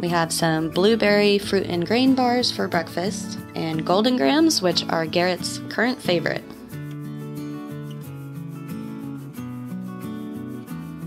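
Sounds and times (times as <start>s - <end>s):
strummed background music: 0.0s - 11.0s.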